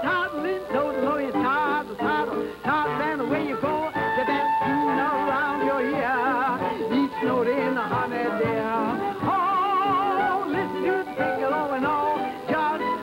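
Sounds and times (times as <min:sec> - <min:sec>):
jazz band playing: 0:00.0 - 0:13.0.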